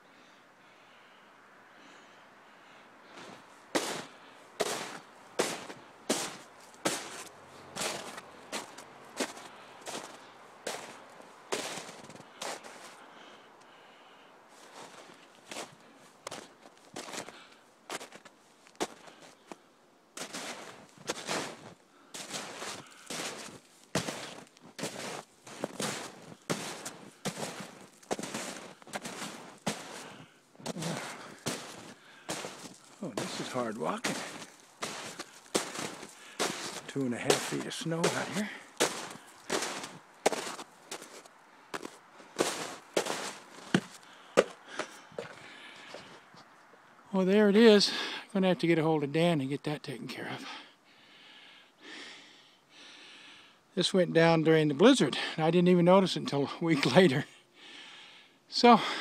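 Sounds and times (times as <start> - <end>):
footsteps crunching through snow: 3.1 - 13.0, 14.5 - 19.6, 20.2 - 46.2.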